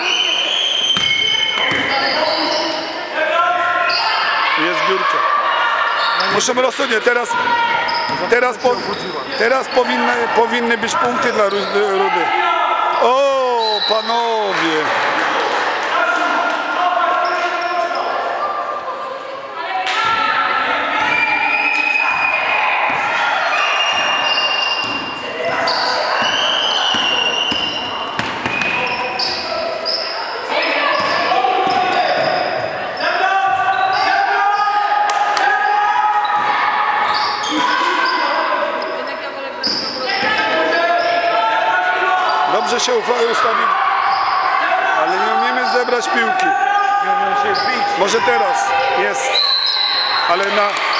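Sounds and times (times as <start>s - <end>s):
voices calling out in a hall: 0.0s - 50.9s
basketball bouncing on wooden floor: 1.0s - 1.9s.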